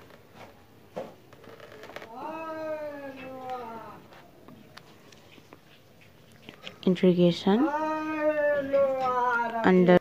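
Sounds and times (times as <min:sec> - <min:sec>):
cat meowing: 0:02.1 - 0:04.0, 0:07.6 - 0:09.8.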